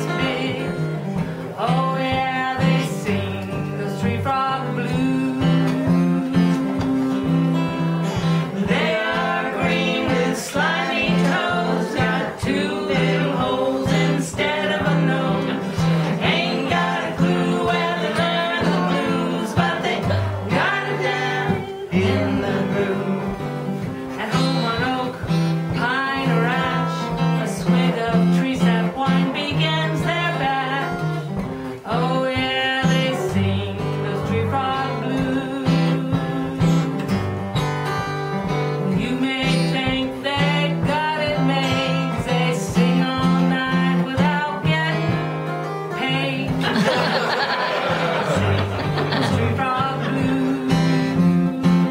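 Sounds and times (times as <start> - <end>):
fingerpicked acoustic guitar: 0.0 - 51.9
woman singing blues: 0.0 - 51.9.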